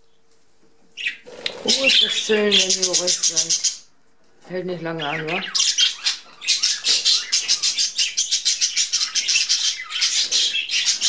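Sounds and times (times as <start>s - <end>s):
budgerigars chirping and warbling: 1.0s - 3.9s, 4.7s - 11.0s.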